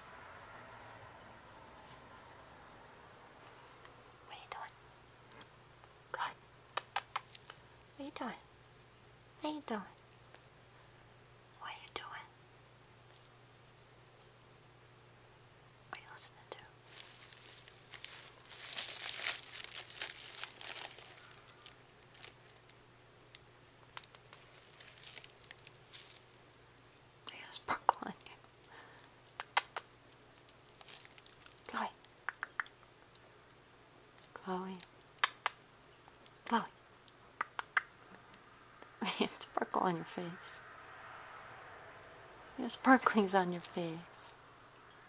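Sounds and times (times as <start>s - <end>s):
tissue paper crinkling: 16.8s - 22.7s, 24.1s - 26.4s, 30.4s - 31.8s.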